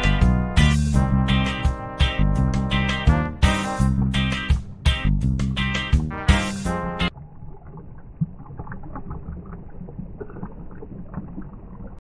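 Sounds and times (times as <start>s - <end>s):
juice pouring and splashing: 7.1s - 12.0s.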